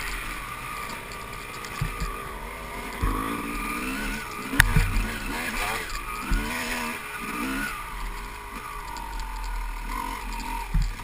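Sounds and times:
dirt bike engine running: 0.0s - 11.0s
short low thumps: 4.5s - 5.7s.

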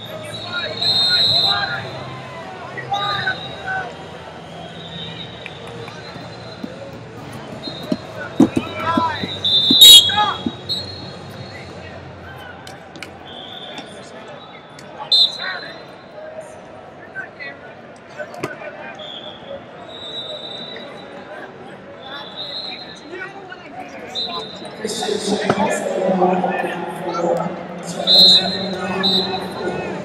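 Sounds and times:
coaches and crowd shouting: 0.0s - 12.7s, 20.2s - 30.0s
referee whistles: 0.1s - 1.9s, 3.0s - 6.8s, 7.5s - 11.7s, 13.2s - 15.9s, 18.9s - 21.3s, 22.0s - 23.1s, 24.0s - 24.8s, 27.9s - 30.0s.

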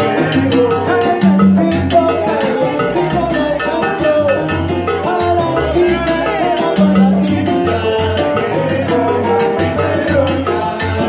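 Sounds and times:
melody line: 0.0s - 10.6s
maracas: 0.0s - 11.0s
percussion beat: 0.0s - 11.0s
upright bass: 0.0s - 11.0s.

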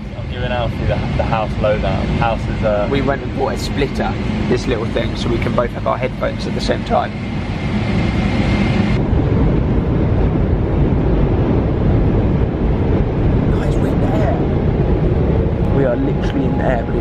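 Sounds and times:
jet engines roaring: 0.0s - 17.0s
rushing air: 0.0s - 17.0s.

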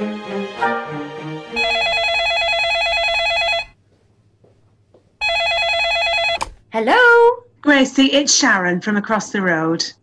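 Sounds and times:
music notes: 0.0s - 1.7s
telephone ringing with electronic trill: 1.6s - 3.8s, 5.2s - 6.4s.

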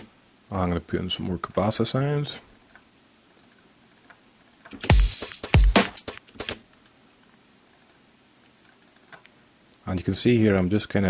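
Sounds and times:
hi-hat and cabasa hits: 4.9s - 6.6s.

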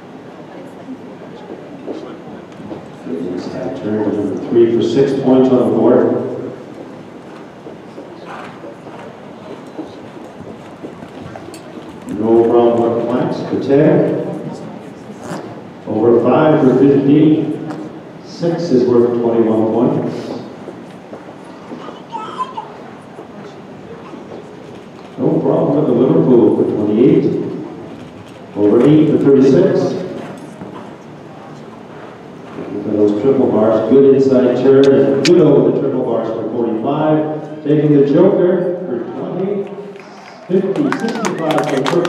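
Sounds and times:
steady hall rumble: 0.0s - 39.8s.

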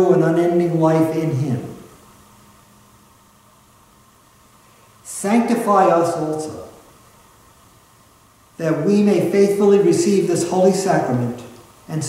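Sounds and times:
faint low hum: 0.0s - 12.0s
faint steady hiss: 0.0s - 12.0s.

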